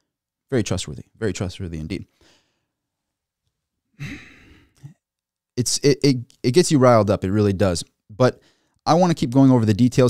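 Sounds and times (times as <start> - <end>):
man sighing: 4.0 - 4.9.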